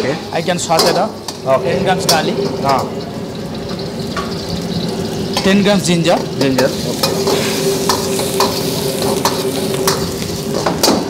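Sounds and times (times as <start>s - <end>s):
garlic sizzling in hot oil: 0.0s - 11.0s.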